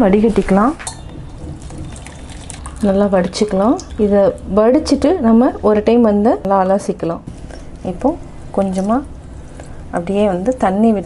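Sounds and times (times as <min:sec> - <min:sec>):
liquid splashing through cloth: 0:01.4 - 0:03.9.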